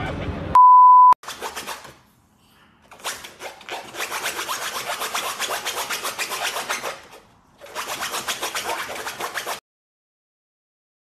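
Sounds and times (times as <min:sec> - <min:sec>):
dog claws scraping mesh fabric: 0:01.2 - 0:02.0, 0:02.9 - 0:09.6.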